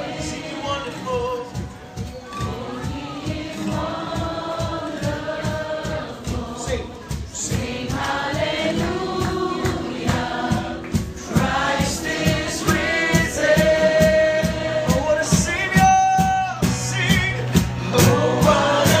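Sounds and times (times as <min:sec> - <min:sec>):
voices singing together: 0:00.0 - 0:01.6, 0:02.3 - 0:19.0
acoustic guitar: 0:00.0 - 0:19.0
steady beat: 0:00.0 - 0:19.0.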